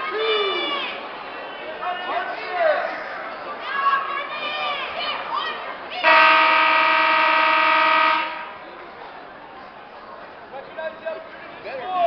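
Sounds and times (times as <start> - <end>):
scoreboard horn blast: 6.0 - 8.6.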